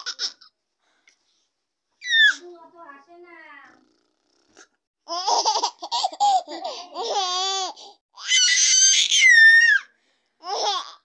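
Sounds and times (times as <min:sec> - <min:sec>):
baby laughing: 0:00.0 - 0:00.5, 0:05.1 - 0:07.9, 0:10.4 - 0:11.0
baby squealing: 0:02.0 - 0:02.4, 0:07.0 - 0:11.0.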